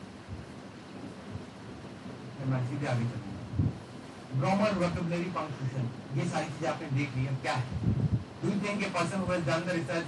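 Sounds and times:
room noise hiss: 0.0s - 10.0s
faint low thumps: 3.5s - 3.9s, 7.7s - 8.3s.

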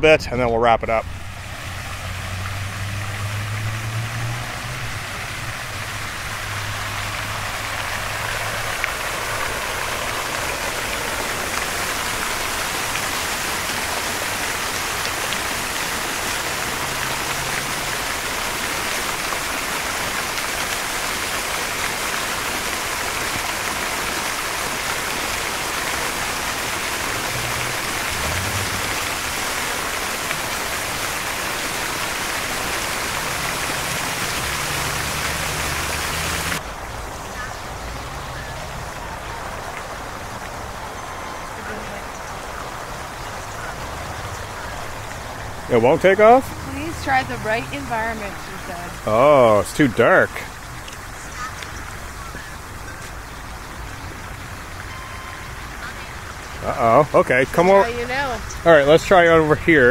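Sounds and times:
fountain water splashing: 0.0s - 59.9s.

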